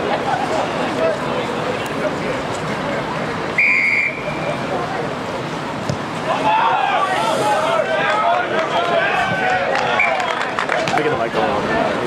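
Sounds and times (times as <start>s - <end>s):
murmur of spectators: 0.0s - 12.0s
referee whistle blast: 3.6s - 4.4s
spectators shouting: 6.2s - 11.0s.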